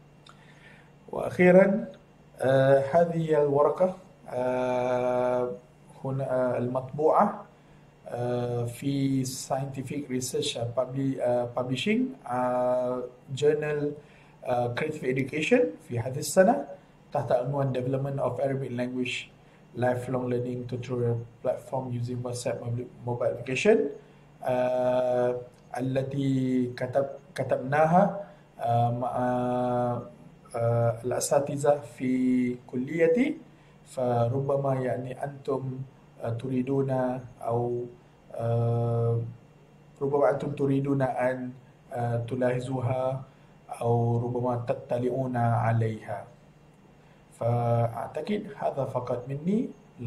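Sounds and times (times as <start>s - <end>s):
man speaking: 1.1s - 39.4s, 40.0s - 46.4s, 47.3s - 50.0s.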